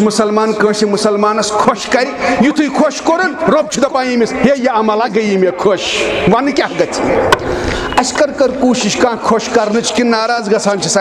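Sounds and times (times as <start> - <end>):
man preaching: 0.0 - 11.0.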